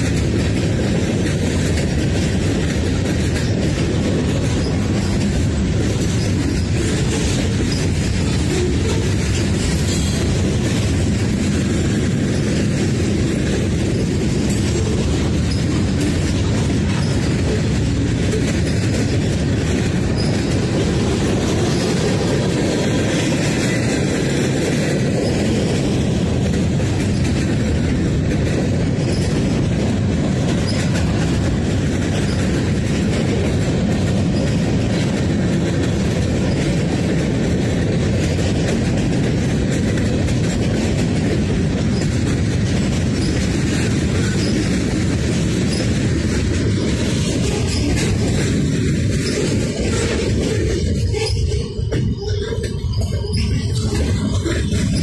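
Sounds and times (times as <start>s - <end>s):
freight train wheels on rails: 0.0s - 55.0s.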